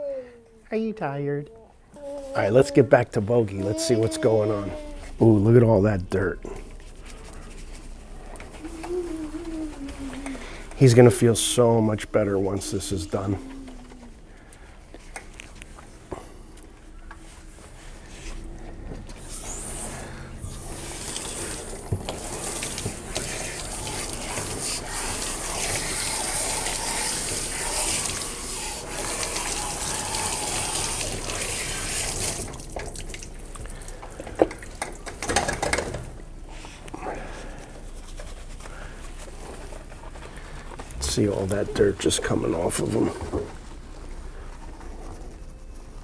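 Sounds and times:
water spraying from hose: 19.2 - 33.4.

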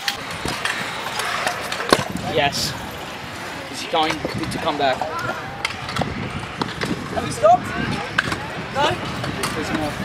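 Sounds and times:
skateboard wheels rolling on concrete: 0.0 - 10.0.

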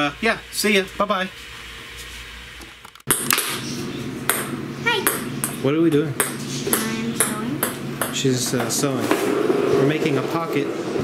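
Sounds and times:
fan hum: 0.0 - 11.0.

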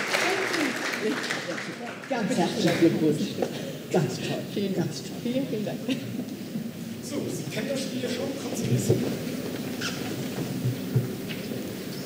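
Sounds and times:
audience murmuring: 0.0 - 12.0.

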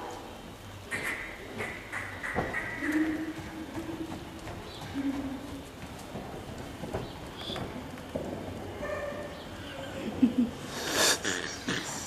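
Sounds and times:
horse hoofbeats on sand: 2.3 - 9.6.

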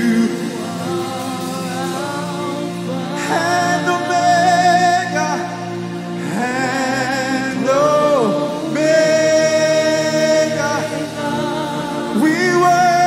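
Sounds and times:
man singing into a microphone: 0.0 - 13.0
steady held chords: 0.0 - 13.0.

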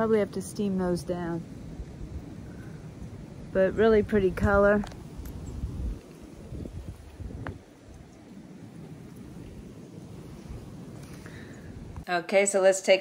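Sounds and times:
wind buffeting microphone: 0.0 - 12.1.

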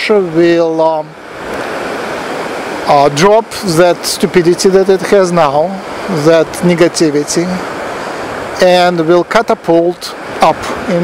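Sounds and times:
person speaking: 0.0 - 1.2, 2.8 - 7.7, 8.6 - 11.0
steady rushing hiss: 0.0 - 11.0.

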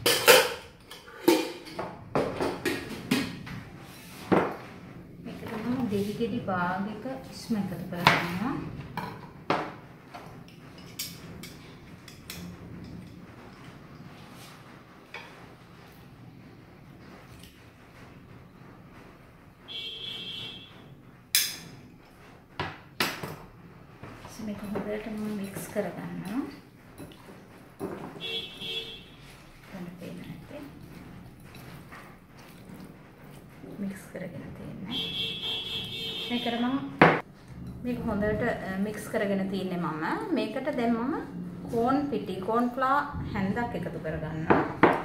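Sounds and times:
kitchen items clattering: 0.0 - 15.8, 21.3 - 45.0.

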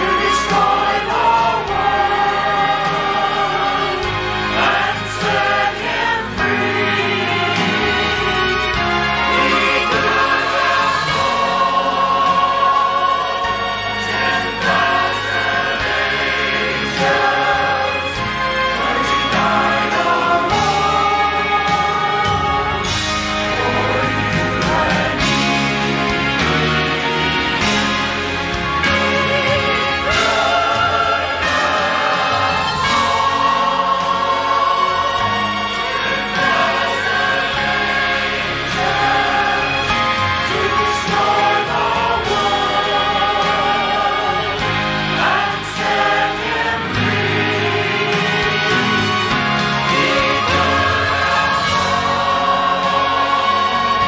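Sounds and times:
choir singing: 0.0 - 54.0
instrumental accompaniment: 0.0 - 54.0.

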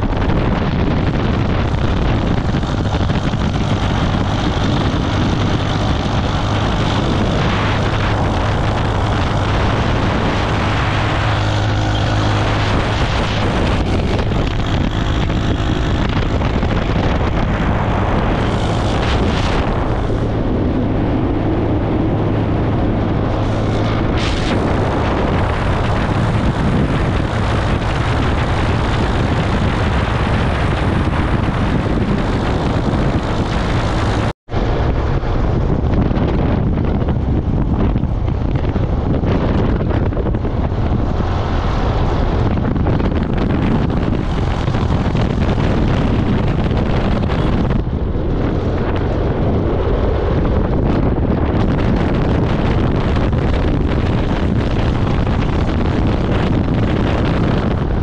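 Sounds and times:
motorcycle engine running: 0.0 - 58.0
wind buffeting microphone: 0.0 - 58.0.

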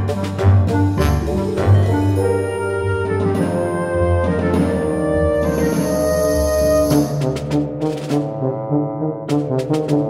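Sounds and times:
low brass-like notes: 0.0 - 10.0.

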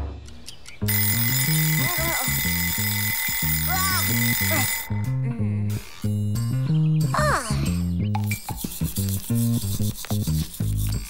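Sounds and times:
background music: 0.0 - 11.0
cartoon alarm clock ringing: 0.9 - 6.0.

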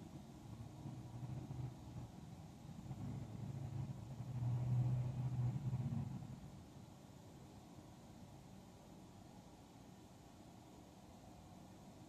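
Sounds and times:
car driving past: 0.8 - 6.6.

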